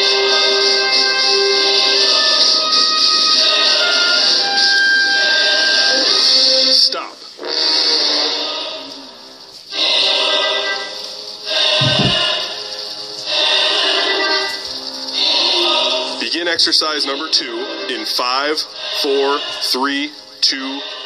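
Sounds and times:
workout music: 0:11.7 - 0:12.5
low thud: 0:11.8 - 0:12.4.

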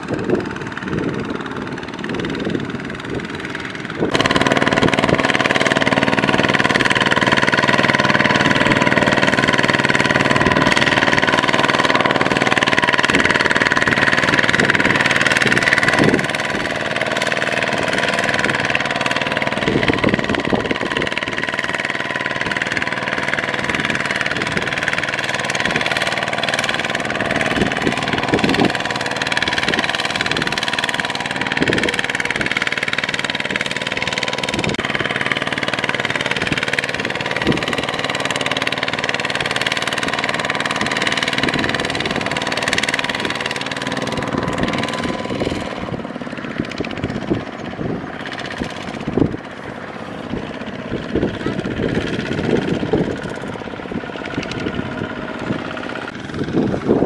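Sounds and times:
diesel tiller engine running: 0:00.0 - 0:57.0.

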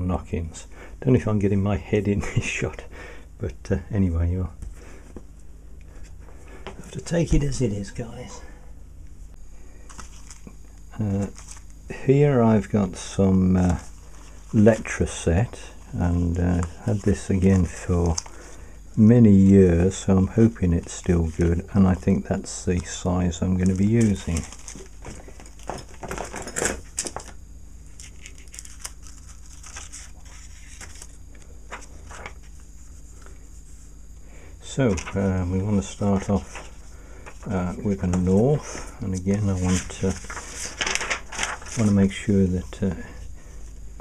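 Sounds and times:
low steady hum: 0:00.0 - 0:44.0
sheet rustling and crinkling on paper: 0:09.8 - 0:11.8, 0:12.5 - 0:33.9, 0:34.7 - 0:42.8.

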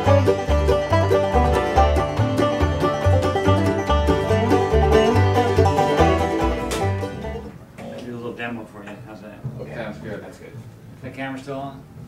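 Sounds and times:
bluegrass banjo music: 0:00.0 - 0:07.7
plucked bass line: 0:00.0 - 0:08.0.

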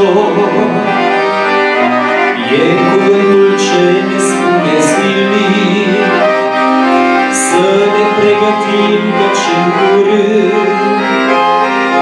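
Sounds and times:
accordion playing slow melody: 0:00.0 - 0:12.0.

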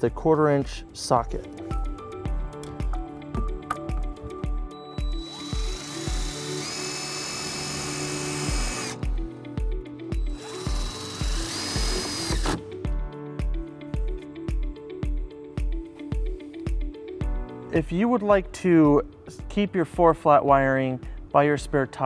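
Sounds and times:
background music with beat: 0:00.0 - 0:22.0
cordless driver driving screw: 0:05.0 - 0:09.0, 0:10.2 - 0:12.6.

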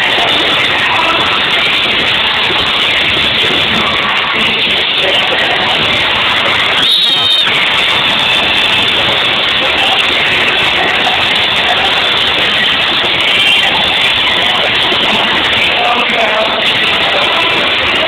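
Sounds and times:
crowd screaming: 0:00.0 - 0:18.0
high-pitched squeal: 0:00.1 - 0:18.0.

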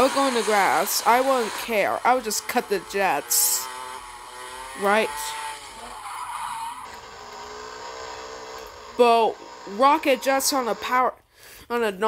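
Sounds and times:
racing go-kart engine: 0:00.0 - 0:11.2.

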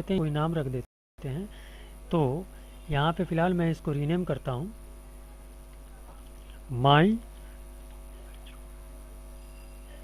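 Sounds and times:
man speaking: 0:00.0 - 0:01.5, 0:02.1 - 0:04.8, 0:06.0 - 0:07.3
electrical mains hum: 0:00.0 - 0:10.0.

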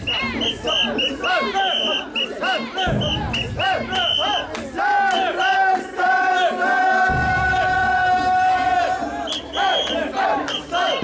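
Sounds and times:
shrill whistle blasts: 0:00.0 - 0:04.5, 0:09.2 - 0:11.0
people shouting rhythmic chant: 0:00.0 - 0:11.0.

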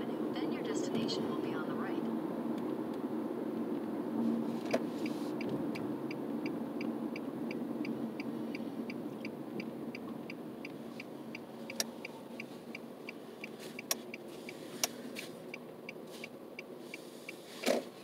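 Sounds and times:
road and engine noise in car: 0:00.0 - 0:18.0
turn signal ticking: 0:04.7 - 0:18.0.

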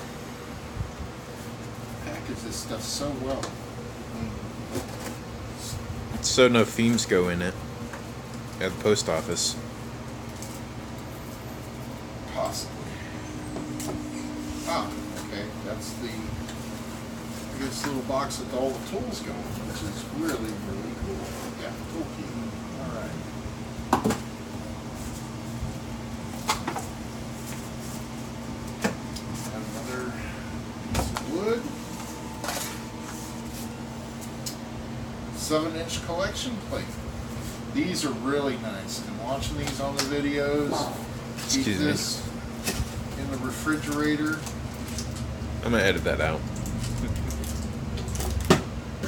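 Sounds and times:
steady low hum: 0:00.0 - 0:49.0.

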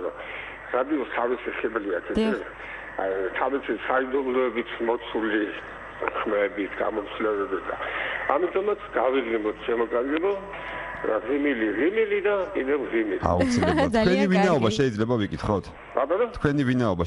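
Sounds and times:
film dialogue speech: 0:02.1 - 0:03.4, 0:13.2 - 0:17.0.

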